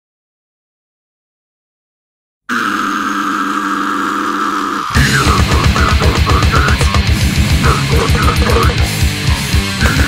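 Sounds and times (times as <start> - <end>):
steady drone: 2.5 - 10.0
death metal band playing: 4.6 - 10.0.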